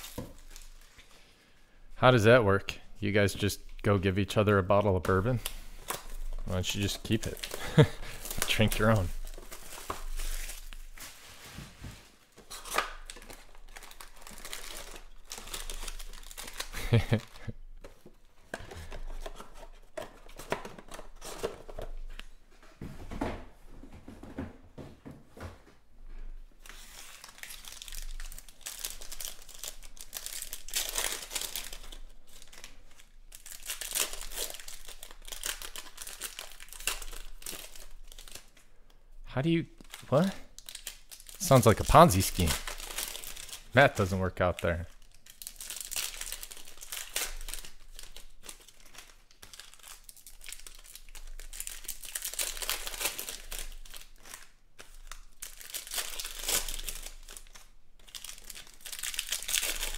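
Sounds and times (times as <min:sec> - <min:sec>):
plastic shrink wrap tearing: 0:00.0 - 0:01.0, 0:05.1 - 0:11.3, 0:12.5 - 0:17.5, 0:26.6 - 0:38.5, 0:39.7 - 0:59.9
foil packs crinkling and tearing: 0:00.0 - 0:01.2, 0:05.1 - 0:11.6, 0:12.5 - 0:17.5, 0:26.6 - 0:38.6, 0:39.8 - 0:59.9.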